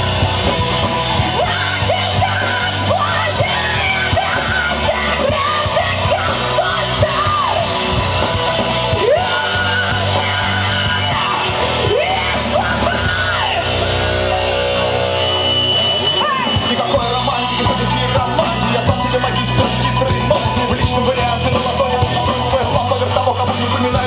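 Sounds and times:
nu-metal band playing live: 0.0 - 24.0
woman singing into a microphone: 1.4 - 7.7.

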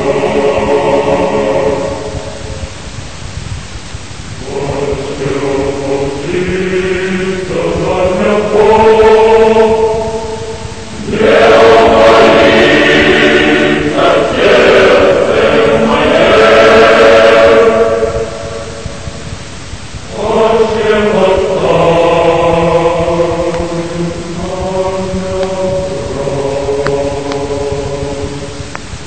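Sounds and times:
choir singing a slow chant: 0.0 - 3.0, 4.2 - 29.0.

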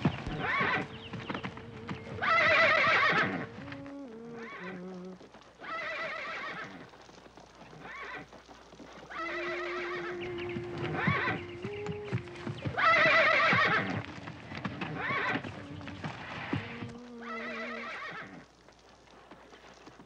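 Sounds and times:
horses whinnying: 0.0 - 6.9, 7.6 - 18.6
hooves clopping on dirt: 0.0 - 20.0.

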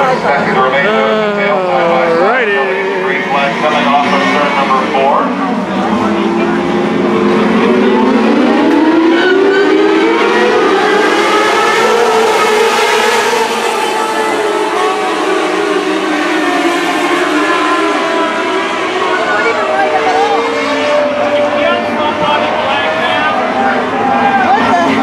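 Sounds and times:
race car engines accelerating: 0.0 - 25.0.

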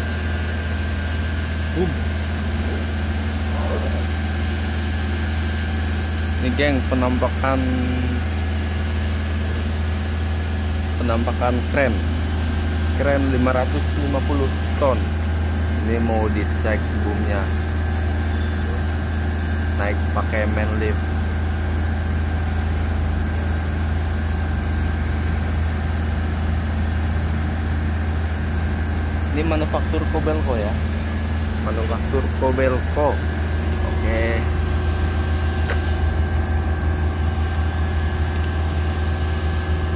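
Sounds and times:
large engine idling: 0.0 - 39.9.

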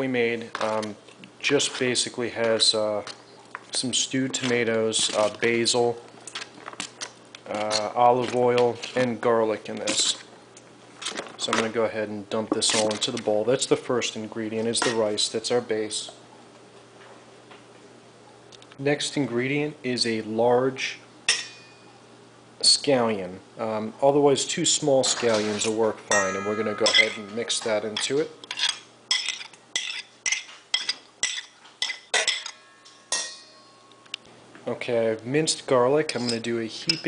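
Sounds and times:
faint low hum: 0.0 - 37.0
steel bowl ringing: 21.3 - 22.0, 26.1 - 28.2, 30.8 - 34.2
spoon clinking on plate and bowl: 26.1 - 34.1.

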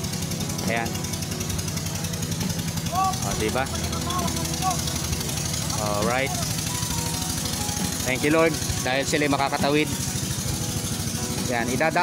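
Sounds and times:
boat motor chugging: 0.0 - 12.0.

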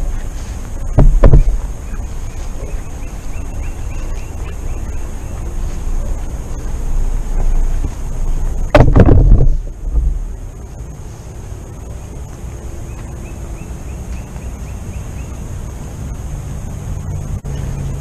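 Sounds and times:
faint high chirping: 0.0 - 8.8, 9.4 - 18.0
rumbling wind: 0.0 - 18.0.

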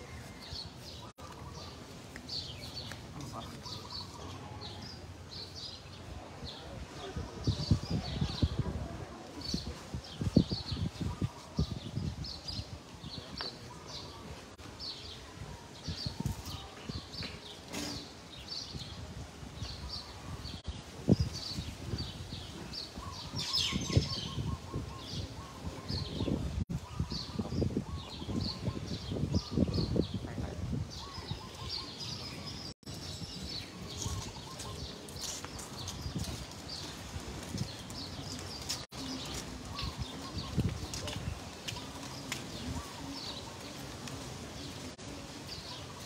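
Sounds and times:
small birds chirping: 19.6 - 46.0.

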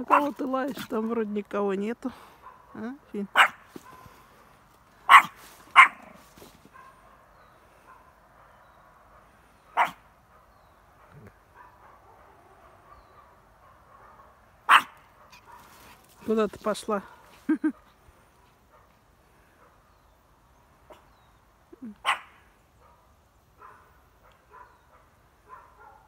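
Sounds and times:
small dog barking: 0.0 - 0.4, 2.4 - 4.0, 5.1 - 7.2, 9.7 - 15.8, 22.0 - 26.0.

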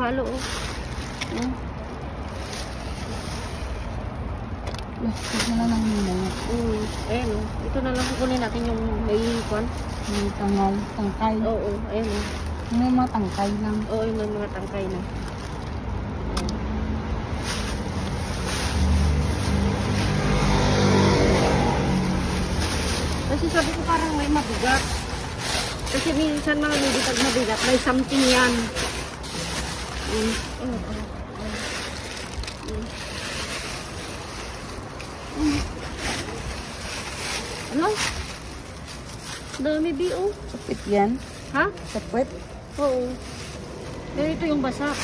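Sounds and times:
plastic bags crinkling: 0.0 - 16.1, 17.3 - 45.0.

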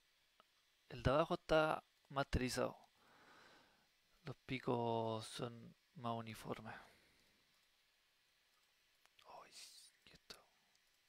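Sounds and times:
person whispering: 9.2 - 10.7.

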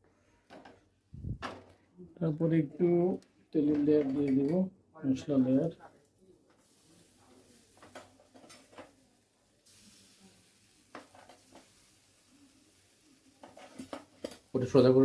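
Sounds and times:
man speaking: 2.0 - 5.9.

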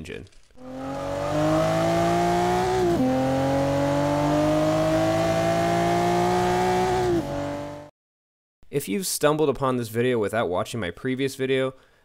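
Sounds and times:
car engine accelerating: 0.6 - 7.9.

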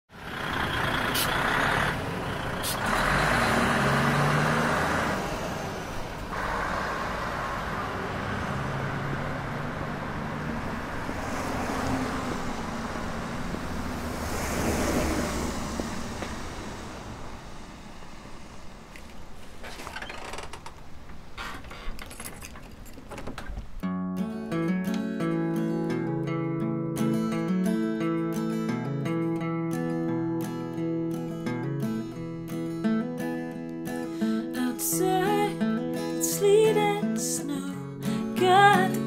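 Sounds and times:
vehicles passing: 0.1 - 39.0.

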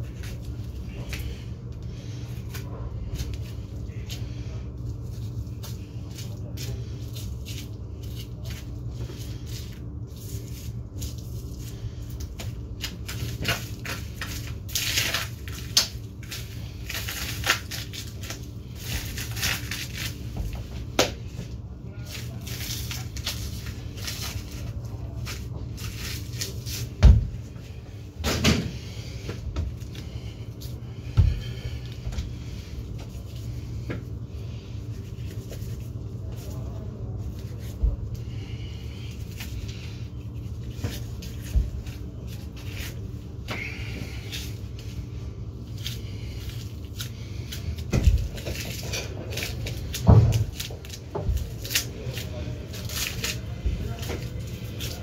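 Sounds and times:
refrigeration hum: 0.0 - 55.0
heavy thumps: 31.0 - 32.4.

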